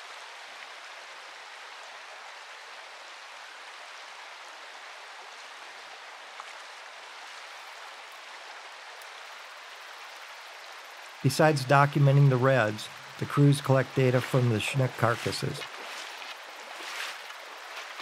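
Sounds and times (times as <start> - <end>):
stream over gravel: 0.0 - 18.0.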